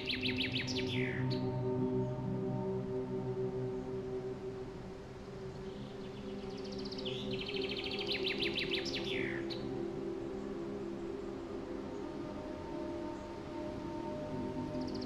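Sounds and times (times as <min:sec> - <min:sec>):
ambient music tones: 0:00.0 - 0:15.0.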